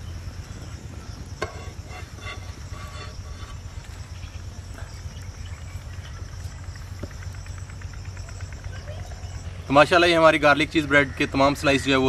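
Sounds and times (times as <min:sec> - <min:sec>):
high insect buzz: 0:00.0 - 0:07.5
low steady rumble: 0:00.0 - 0:12.0.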